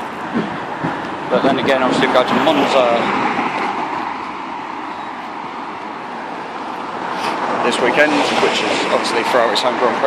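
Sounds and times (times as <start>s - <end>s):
tyres hissing on road: 0.0s - 10.0s.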